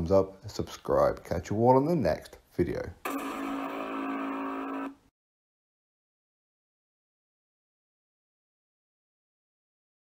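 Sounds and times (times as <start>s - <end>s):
horn-like buzzing tone: 3.0s - 5.1s.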